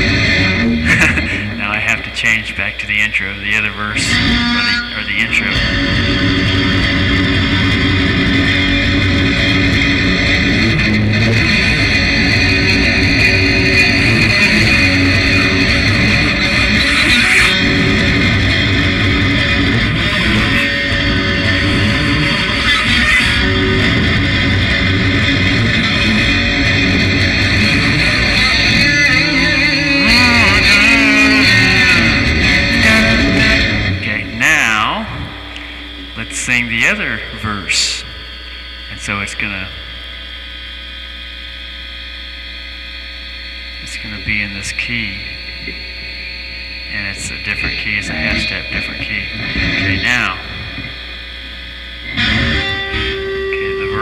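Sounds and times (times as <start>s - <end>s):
guitar playing: 0.0s - 38.2s, 46.9s - 54.0s
person singing: 28.2s - 36.0s, 47.6s - 49.0s.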